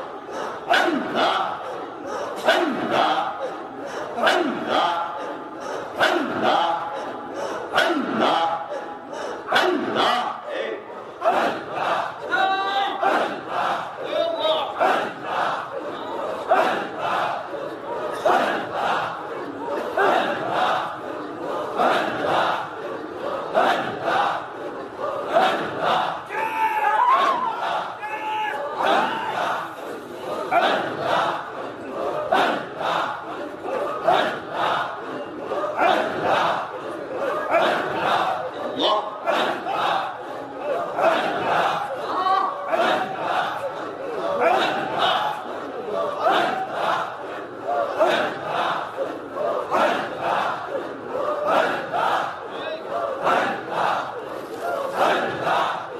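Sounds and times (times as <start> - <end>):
crowd of men chanting: 0.0 - 55.9.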